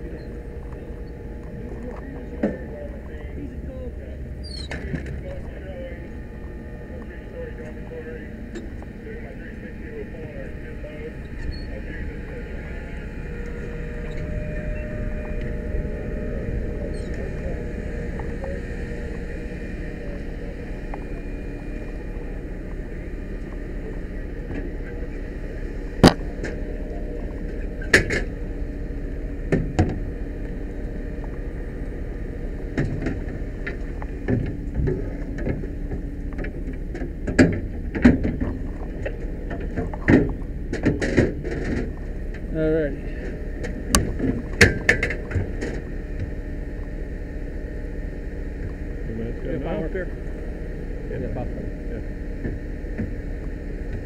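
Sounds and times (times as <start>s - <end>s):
fire truck engine running: 0.0s - 54.0s.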